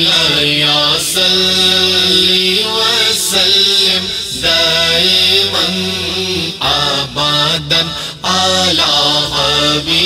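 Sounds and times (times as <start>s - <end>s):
backing drone: 0.0s - 10.0s
man singing devotional song: 0.0s - 10.0s.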